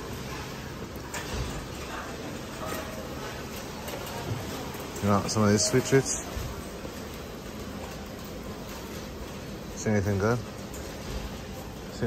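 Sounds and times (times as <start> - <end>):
supermarket background noise: 0.0 - 12.0.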